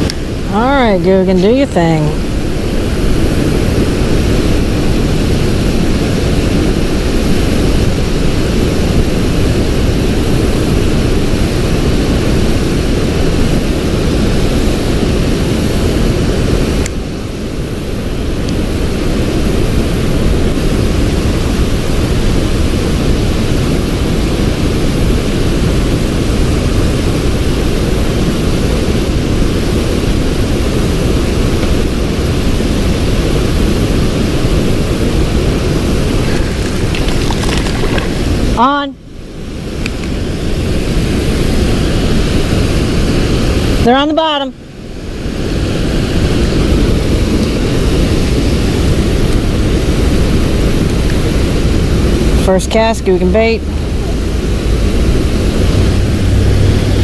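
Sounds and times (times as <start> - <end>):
wind buffeting microphone: 0.0 - 43.8.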